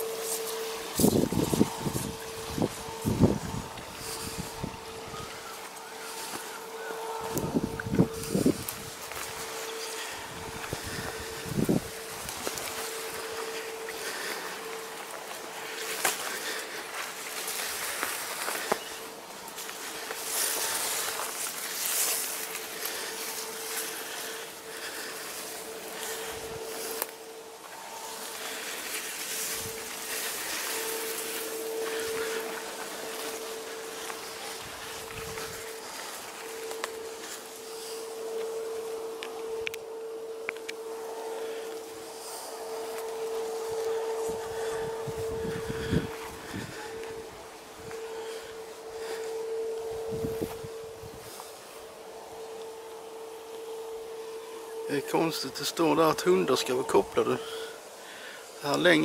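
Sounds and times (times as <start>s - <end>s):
reeds and bushes rustling: 0.0s - 59.0s
steady low hum: 0.0s - 59.0s
wind buffeting microphone: 0.1s - 14.1s, 30.8s - 35.9s, 38.1s - 51.4s.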